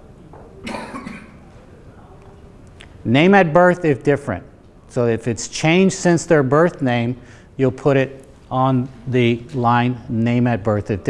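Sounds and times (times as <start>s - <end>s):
person coughing: 0.7s - 1.4s.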